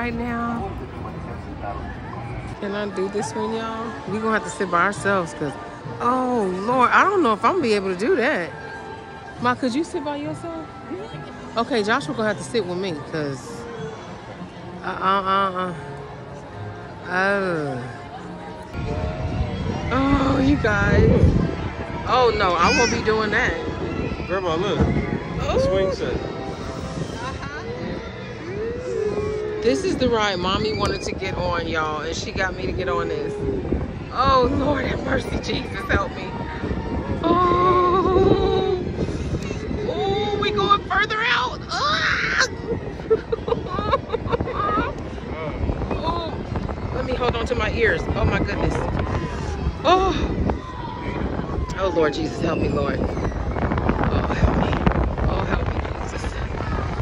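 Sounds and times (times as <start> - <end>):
people's voices: 0.0 - 57.0
wind buffeting microphone: 0.0 - 57.0.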